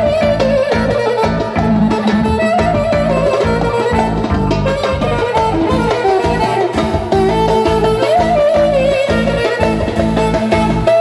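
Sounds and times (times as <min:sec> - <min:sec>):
clarinet melody: 0:00.0 - 0:11.0
rhythmic accompaniment: 0:00.0 - 0:11.0.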